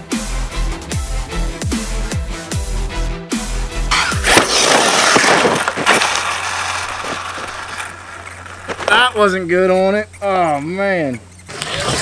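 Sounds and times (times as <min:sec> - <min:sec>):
toy truck crashing onto dirt: 0:03.9 - 0:09.4.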